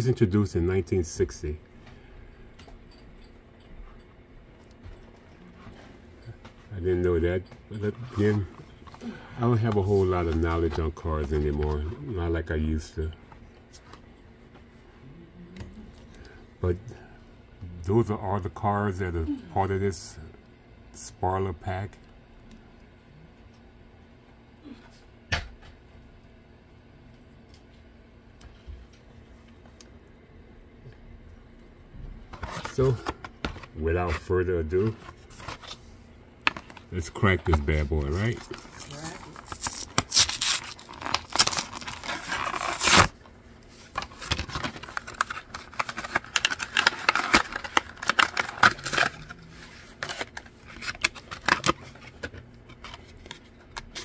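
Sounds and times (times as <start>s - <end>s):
steady low hum: 0.0s - 54.0s
blister pack being handled: 36.5s - 54.0s
cardboard tearing: 37.5s - 43.2s, 43.9s - 52.1s.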